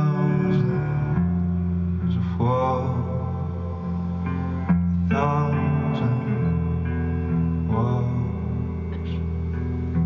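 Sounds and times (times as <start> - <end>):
low guitar and bass notes: 0.0 - 10.0.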